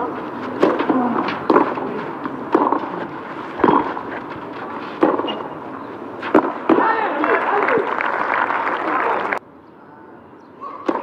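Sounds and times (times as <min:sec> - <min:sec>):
tennis racket hitting ball: 0:00.1 - 0:05.6, 0:06.2 - 0:07.1.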